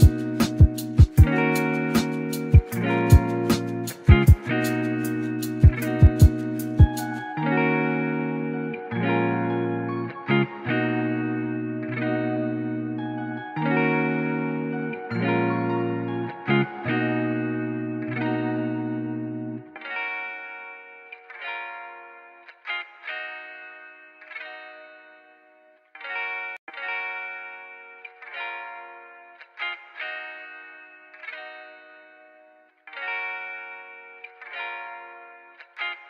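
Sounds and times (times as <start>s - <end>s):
lo-fi guitar music: 0.0s - 36.0s.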